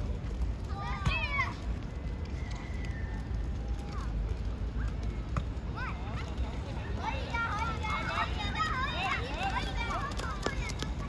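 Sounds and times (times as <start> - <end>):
children shouting: 7.0 - 11.0.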